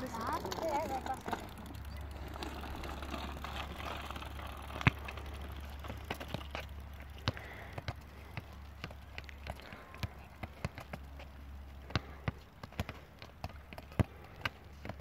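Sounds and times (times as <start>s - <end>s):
low steady rumble: 0.0s - 12.5s
footballs thudding on asphalt: 2.5s - 15.0s.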